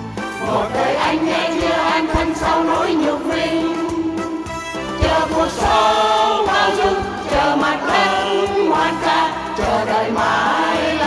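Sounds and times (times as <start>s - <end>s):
musical accompaniment: 0.0s - 11.0s
choir singing: 0.4s - 11.0s.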